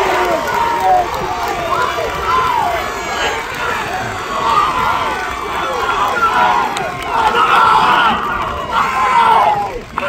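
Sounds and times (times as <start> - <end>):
crowd cheering and shouting: 0.0 - 10.0.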